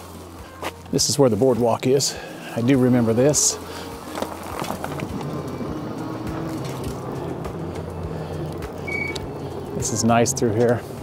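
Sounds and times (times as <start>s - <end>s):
bicycle rolling on wooden boardwalk: 0.0s - 11.0s
bicycle clicks and knocks: 4.1s - 7.1s.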